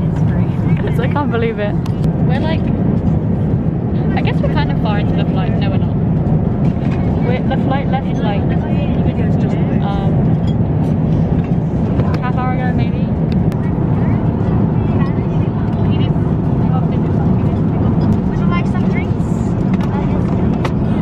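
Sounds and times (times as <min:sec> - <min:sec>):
airliner cabin engine drone: 0:00.0 - 0:21.0
faint passenger voices: 0:00.0 - 0:21.0.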